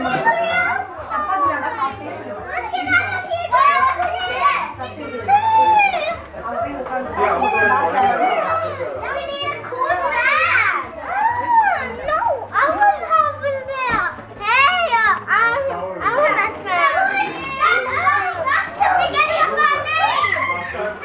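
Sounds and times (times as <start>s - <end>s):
children shouting and chattering: 0.0s - 21.0s
children squealing: 18.9s - 21.0s.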